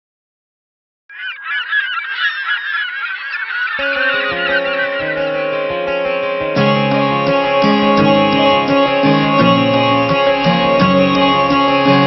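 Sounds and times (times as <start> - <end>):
many birds calling: 1.1 - 12.0
guitar-led music: 3.8 - 12.0.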